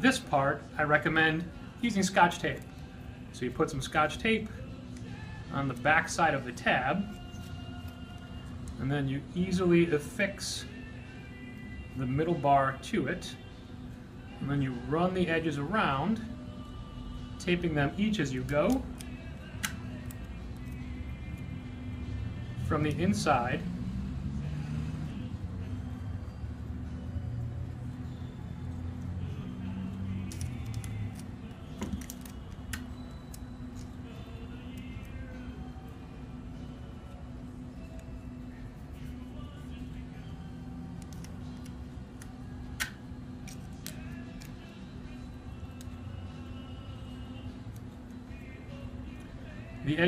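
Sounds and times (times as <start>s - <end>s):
quiet background music: 0.0s - 50.0s
clicks and rustles of card and tape: 7.1s - 8.8s, 18.4s - 21.5s, 30.2s - 35.2s, 40.8s - 44.8s, 45.5s - 46.0s.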